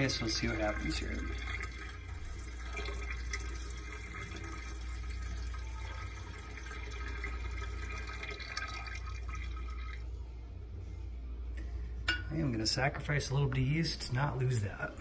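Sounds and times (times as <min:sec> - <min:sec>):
liquid pouring and splashing: 0:00.0 - 0:10.1.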